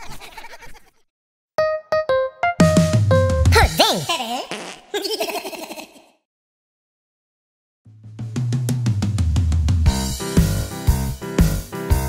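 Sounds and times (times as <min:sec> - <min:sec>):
wobbling giggle-like tone: 0:03.6 - 0:06.2.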